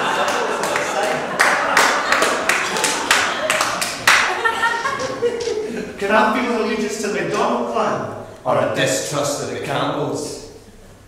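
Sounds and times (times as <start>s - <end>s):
sharp hand clap: 0.0s - 5.6s
light hand claps: 0.3s - 5.6s
man talking: 5.9s - 10.6s.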